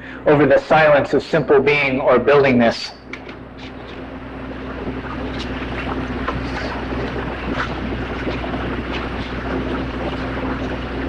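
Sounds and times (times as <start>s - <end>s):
low electrical hum: 0.0s - 11.0s
steady rushing noise: 3.0s - 11.0s.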